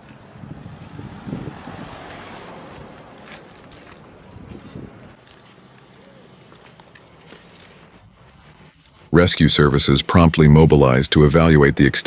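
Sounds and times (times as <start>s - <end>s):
wind buffeting microphone: 0.0s - 5.2s.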